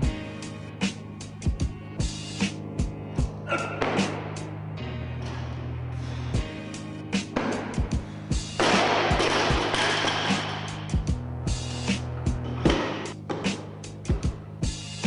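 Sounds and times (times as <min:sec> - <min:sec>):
music with drum beat: 0:00.8 - 0:04.4, 0:07.2 - 0:15.0.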